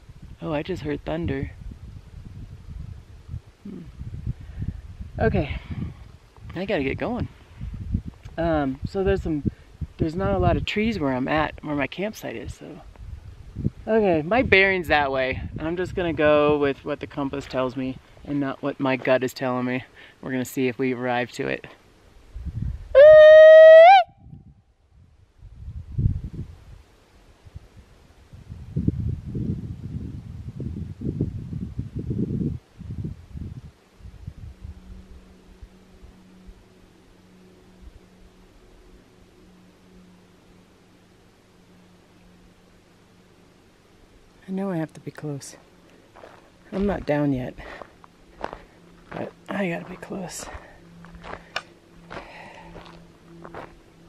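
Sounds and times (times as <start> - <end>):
wind buffeting microphone: 0.0 - 11.6, 12.4 - 18.1, 22.2 - 23.2, 24.0 - 35.8
faint low hum: 24.0 - 54.0
footsteps crunching on forest floor: 45.6 - 53.8.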